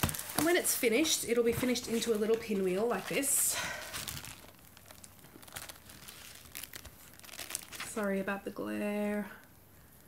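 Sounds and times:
plastic sleeves crinkling: 0.0 - 8.6.

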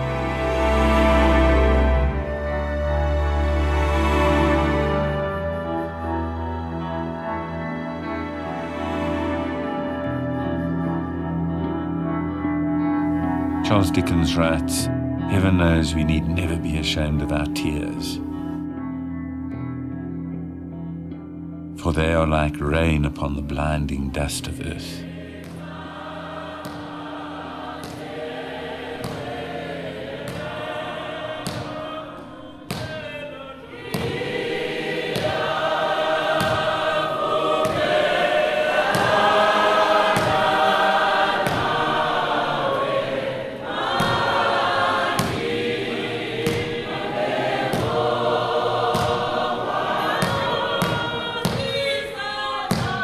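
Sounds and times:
choir singing: 0.0 - 18.6, 24.2 - 53.0
steady beat of thuds: 26.5 - 28.2, 28.9 - 29.5, 33.8 - 38.1, 38.7 - 42.0, 43.8 - 51.8.

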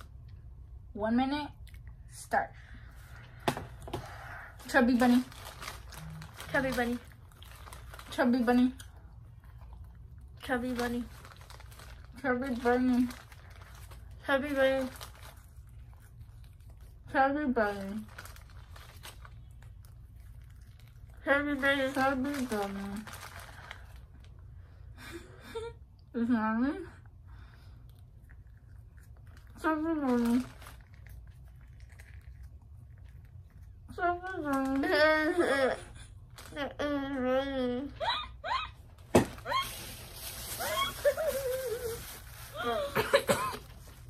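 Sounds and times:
low steady hum: 0.0 - 44.0
plastic bag rustling: 3.1 - 8.8, 10.4 - 16.9, 17.6 - 24.4, 29.6 - 32.2, 36.2 - 36.8, 38.8 - 44.0.

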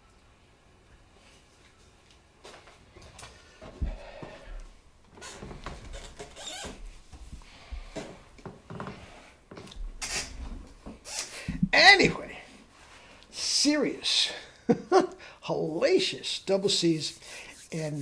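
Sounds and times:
man speaking: 11.5 - 12.5, 13.3 - 14.5, 15.4 - 18.0
rustling and rubbing: 15.6 - 18.0.

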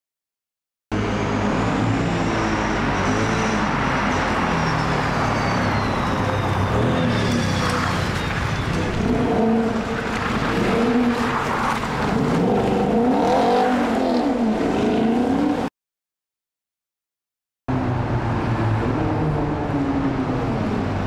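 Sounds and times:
car engines revving: 0.9 - 15.7, 17.7 - 21.0.

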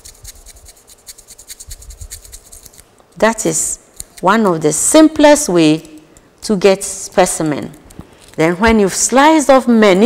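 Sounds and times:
razor blade slicing: 0.0 - 2.8, 3.9 - 4.4.

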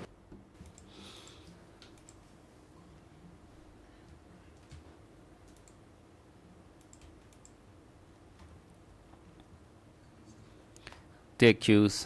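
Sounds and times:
faint clicks: 6.8 - 7.6.

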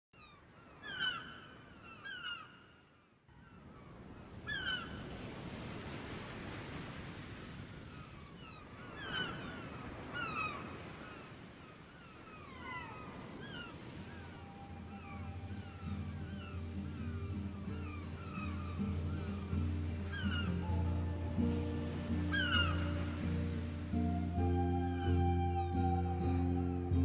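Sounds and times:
gulls calling: 0.2 - 5.3, 7.9 - 27.0
sea waves: 0.2 - 27.0.

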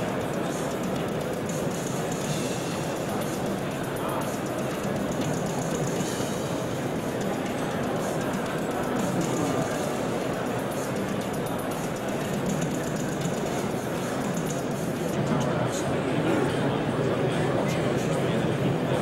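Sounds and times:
music: 0.0 - 16.6.

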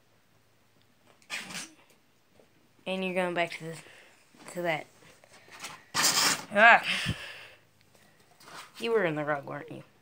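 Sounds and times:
ferret sneezing: 1.3 - 1.8.

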